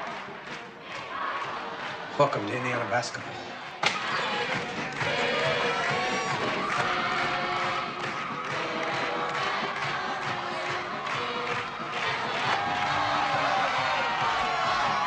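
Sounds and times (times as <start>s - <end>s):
crowd cheering: 0.0s - 15.0s
music with a regular beat: 3.8s - 15.0s.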